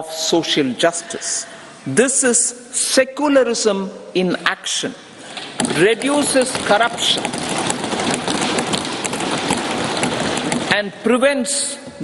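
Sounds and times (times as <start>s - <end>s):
hands thumping wooden desks: 5.3s - 10.8s.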